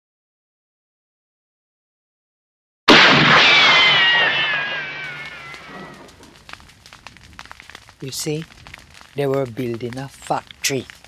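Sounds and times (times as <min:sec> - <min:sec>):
faint crackle: 0:02.9 - 0:11.0
high whine sliding down: 0:03.2 - 0:06.1.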